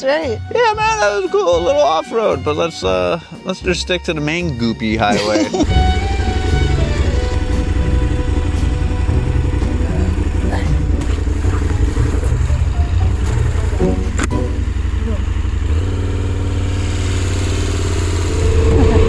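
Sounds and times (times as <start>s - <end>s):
motorcycle engine running: 5.3s - 19.0s.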